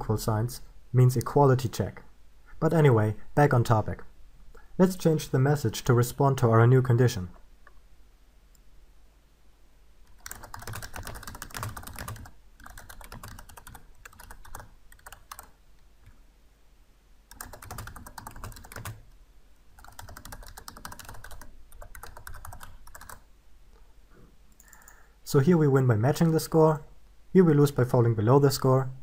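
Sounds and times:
typing on computer keyboard: 10.1s - 16.2s, 17.3s - 19.0s, 19.8s - 23.2s, 24.6s - 25.0s.

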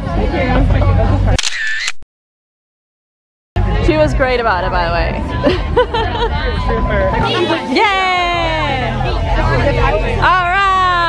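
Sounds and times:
crowd chatter: 0.0s - 1.8s, 3.6s - 11.0s
camera shutter sound effect: 1.3s - 2.0s.

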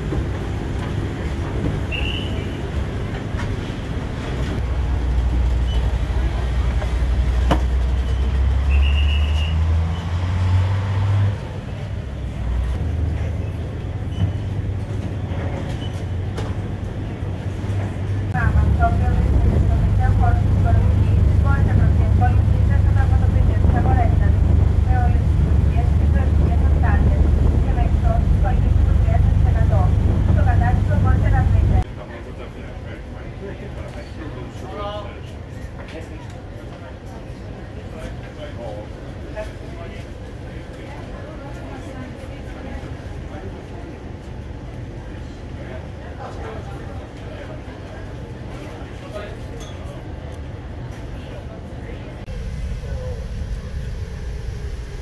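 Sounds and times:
ship engine rumble: 0.0s - 31.9s, 38.9s - 55.0s
passengers' voices: 0.0s - 55.0s
rush of ship wake: 18.4s - 31.8s.

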